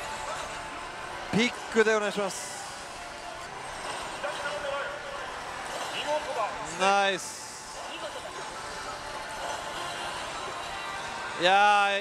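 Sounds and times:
gaming parlour din: 0:00.0 - 0:12.0.

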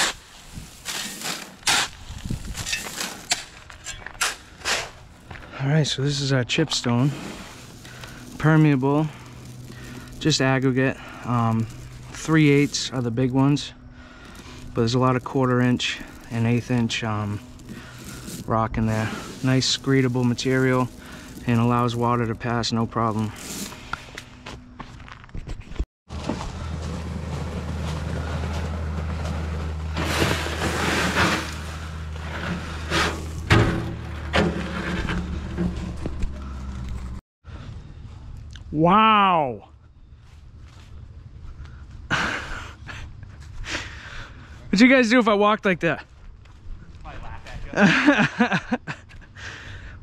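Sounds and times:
wheelbarrow rattling on gravel: 0:00.0 - 0:24.3, 0:26.1 - 0:37.2
engine humming: 0:00.8 - 0:25.2, 0:26.1 - 0:37.2
man laughing: 0:42.1 - 0:43.2, 0:47.7 - 0:49.4.

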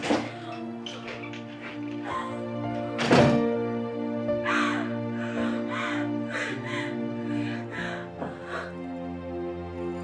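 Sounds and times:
sad background music: 0:00.0 - 0:10.0.

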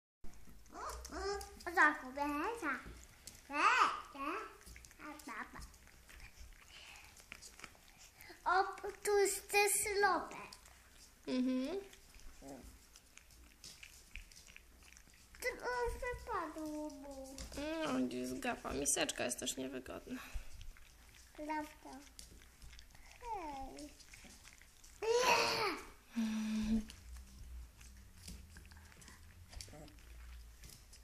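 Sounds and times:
dog crunching dry kibble: 0:00.3 - 0:25.6, 0:26.9 - 0:31.0.

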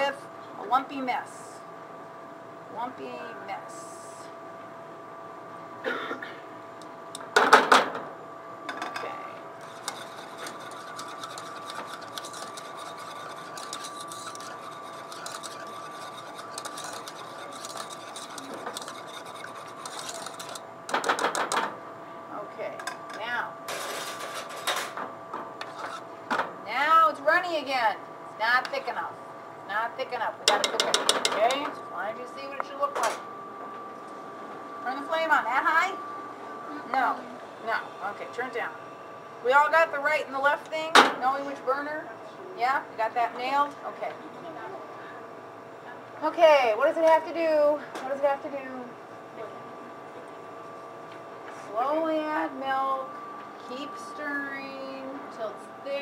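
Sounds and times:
whisk scraping inside a saucepan: 0:09.6 - 0:21.5, 0:25.6 - 0:26.0.

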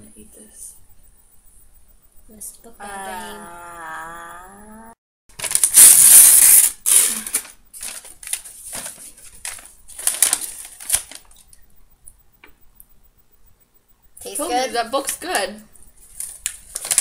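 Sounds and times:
paper tearing and crumpling: 0:05.3 - 0:11.3, 0:16.2 - 0:17.0.

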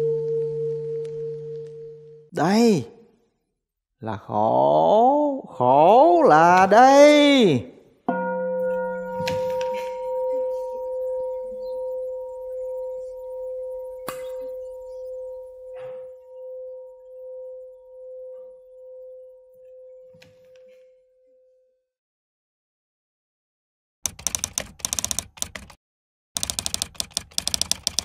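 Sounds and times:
bowl bell ringing: 0:08.1 - 0:20.1.

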